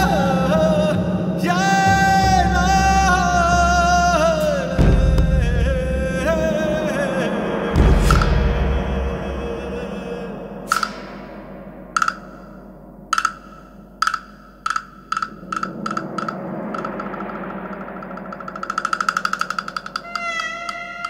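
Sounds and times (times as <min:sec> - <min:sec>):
low steady background: 0:06.6 - 0:21.0
ringing sustained tone: 0:10.2 - 0:21.0
high percussive note roll: 0:10.7 - 0:21.0.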